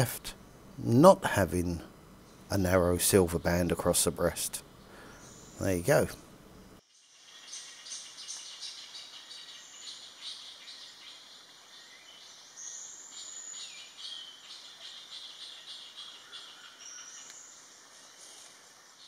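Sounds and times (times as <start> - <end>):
insects: 0.0 - 19.0
small birds chirping: 0.0 - 19.0.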